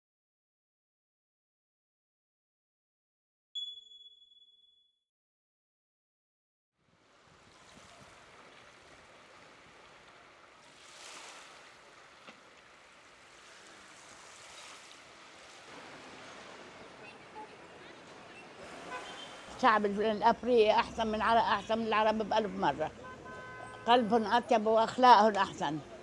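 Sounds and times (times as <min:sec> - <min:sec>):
sea lapping at shore: 0:06.8 - 0:22.2.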